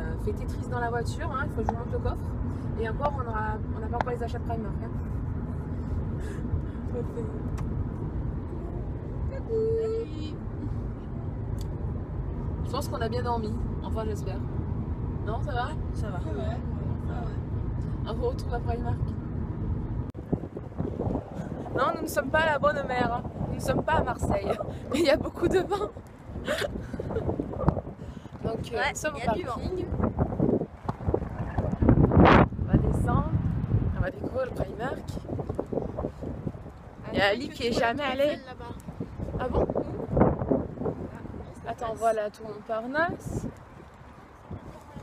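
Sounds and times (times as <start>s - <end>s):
car cabin road and engine noise: 0.0s - 45.0s
wind buffeting microphone: 0.0s - 45.0s.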